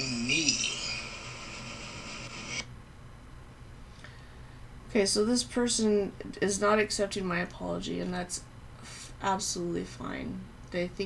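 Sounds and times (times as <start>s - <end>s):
faint hiss from a speaker: 0.0s - 2.7s, 3.6s - 11.0s.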